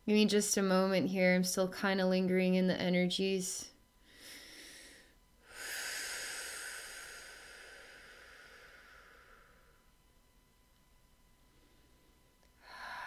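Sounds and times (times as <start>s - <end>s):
woman breathing slowly: 4.0s - 10.0s, 11.3s - 13.0s.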